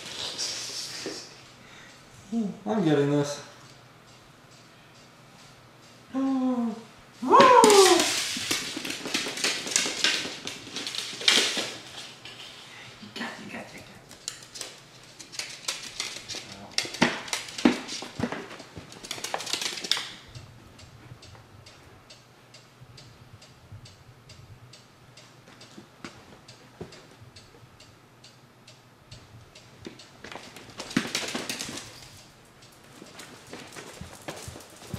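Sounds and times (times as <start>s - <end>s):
claws scrabbling on hardwood floor: 7.6s - 12.7s, 14.1s - 20.3s, 30.2s - 34.9s.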